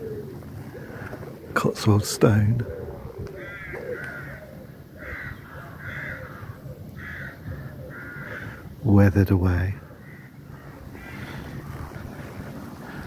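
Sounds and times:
bird calling: 0.0s - 13.0s.

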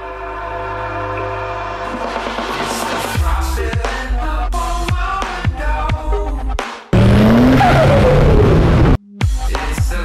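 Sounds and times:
car engine revving: 7.0s - 9.0s
electronic music: 7.0s - 9.0s
rushing noise: 7.0s - 9.0s.

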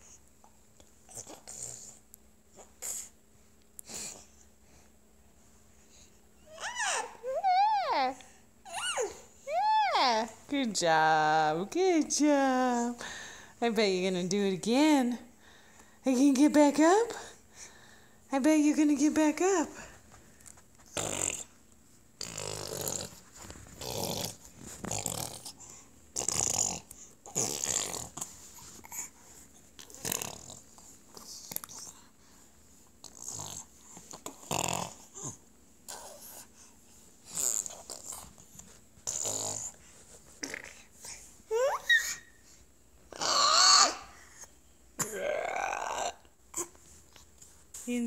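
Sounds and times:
baby squealing: 6.5s - 7.9s, 8.7s - 9.2s, 41.5s - 42.3s, 43.2s - 44.1s
baby crying: 43.1s - 44.1s.

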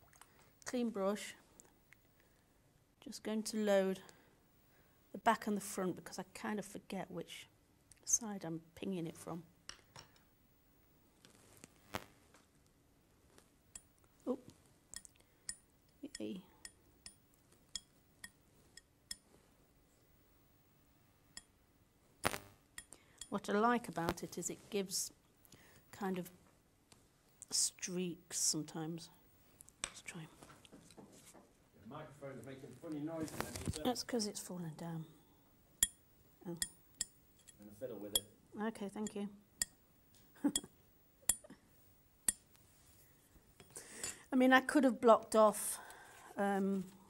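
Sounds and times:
metallic ticks of painting knife: 14.9s - 19.2s, 21.4s - 21.6s, 36.6s - 38.3s, 40.5s - 41.5s.

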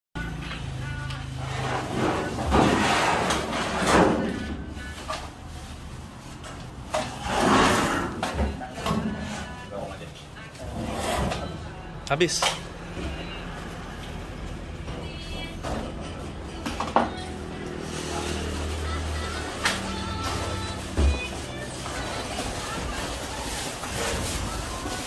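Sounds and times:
indistinct voices of workers: 0.2s - 25.0s.

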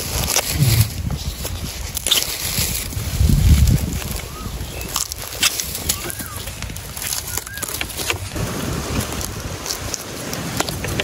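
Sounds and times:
dry leaves and debris crackling: 0.0s - 11.0s
wind rumbling on microphone: 0.0s - 11.0s.

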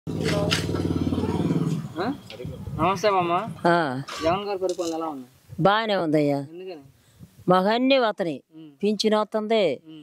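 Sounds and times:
engine running: 0.1s - 2.5s.

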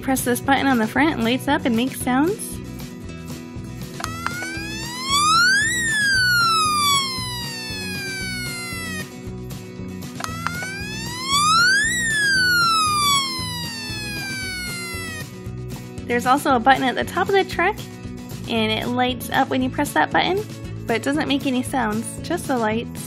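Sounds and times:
background music with steady beat: 1.7s - 17.2s
toy fire truck siren wailing: 4.0s - 9.2s, 10.2s - 15.3s
button click: 10.2s - 10.7s.

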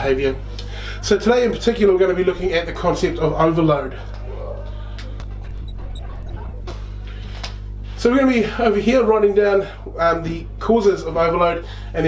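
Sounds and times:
low electrical hum: 0.0s - 12.0s
marker squeaking on glass: 5.2s - 6.8s.

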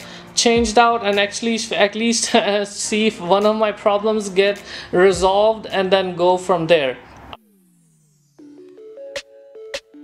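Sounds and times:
synthesizer background music: 0.0s - 10.0s
falling-pitch glide: 7.3s - 9.8s.

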